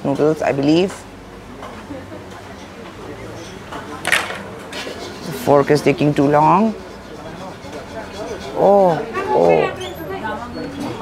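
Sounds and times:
low background voices: 0.0s - 11.0s.

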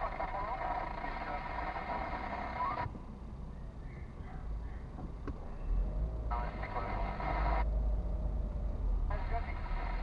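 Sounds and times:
tinny radio voice: 0.0s - 2.9s, 6.3s - 7.6s, 9.1s - 10.0s
car rumbling in traffic: 0.0s - 10.0s.

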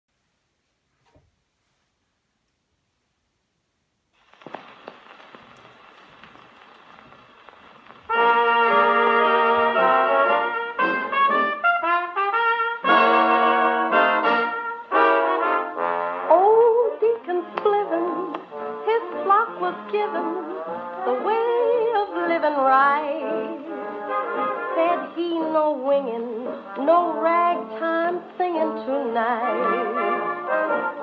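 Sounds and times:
record surface hiss: 0.1s - 31.0s
dixieland jazz band: 8.1s - 31.0s
trombone slides: 8.1s - 31.0s.

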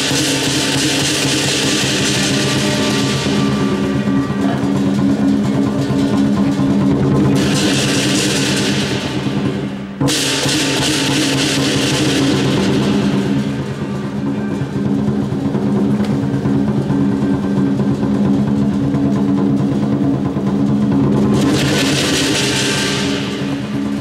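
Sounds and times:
big drum beating: 0.0s - 24.0s
cymbal crash: 0.0s - 24.0s
gong low ringing: 1.7s - 7.7s.

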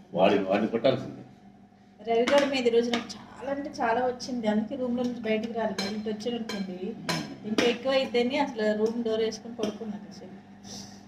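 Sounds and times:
spoon clinking on steel plate: 5.7s - 7.7s.

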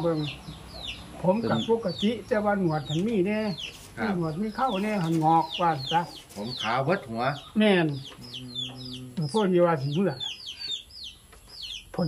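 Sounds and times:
chickens clucking: 0.0s - 12.0s
man speaking: 1.2s - 10.4s.

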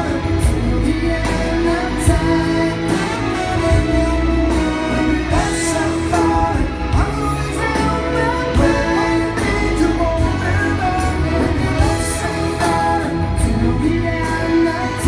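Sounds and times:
person singing: 0.0s - 15.0s
rock band with orchestra: 0.0s - 15.0s.

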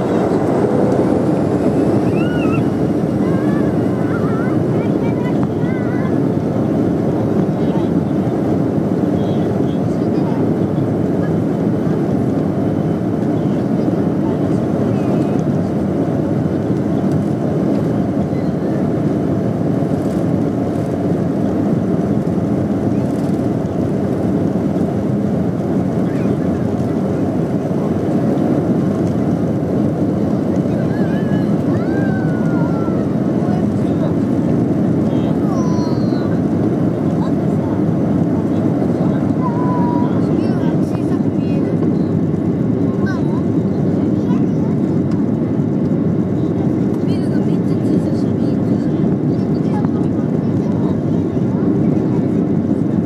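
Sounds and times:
airliner cabin engine drone: 0.0s - 53.0s.

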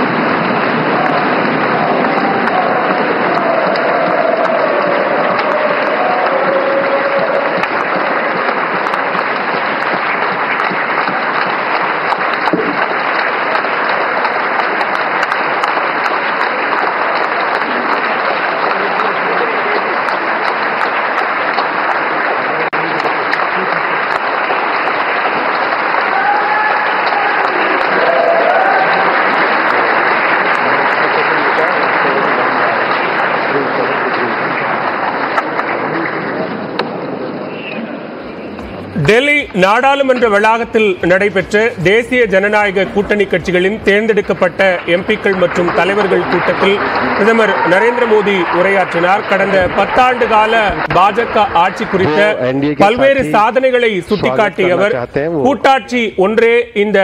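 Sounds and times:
voices calling out: 0.0s - 11.2s, 35.5s - 55.5s
large crowd clapping: 0.0s - 57.0s.

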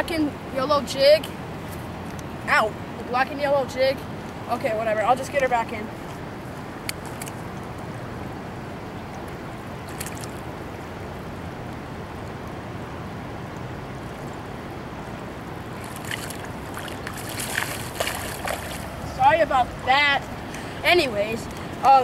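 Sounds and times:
river water flowing: 0.0s - 22.0s
fish splashing in shallow water: 6.8s - 7.7s, 9.0s - 11.4s, 13.8s - 20.8s.

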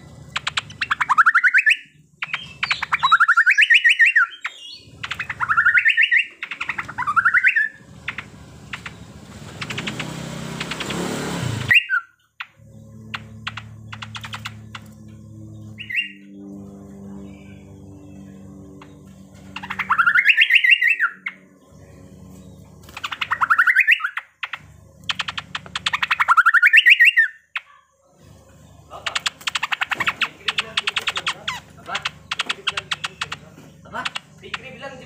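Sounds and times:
bird singing in rapid bursts: 0.0s - 35.0s
fast clicking bird chatter: 0.2s - 11.1s, 12.4s - 15.1s, 18.8s - 21.4s, 22.8s - 27.8s, 29.0s - 35.0s.

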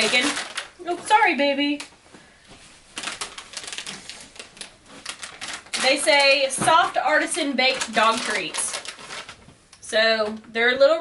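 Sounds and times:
plastic bag crinkling: 0.0s - 1.9s, 2.7s - 9.6s.

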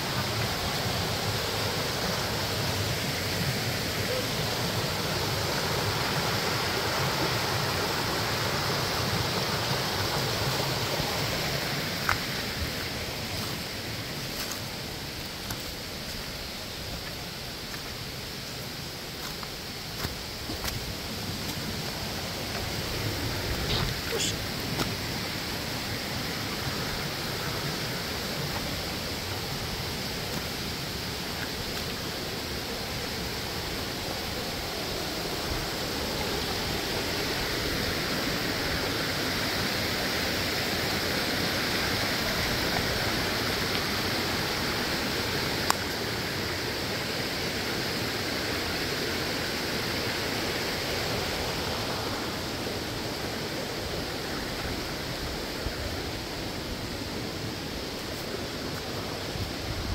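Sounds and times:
stream and waterfall rushing: 0.0s - 59.9s.

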